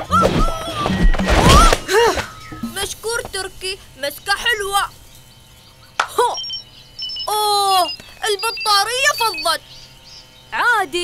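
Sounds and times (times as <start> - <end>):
cartoon jungle ambience: 0.0 - 11.0
high chirps: 1.0 - 11.0.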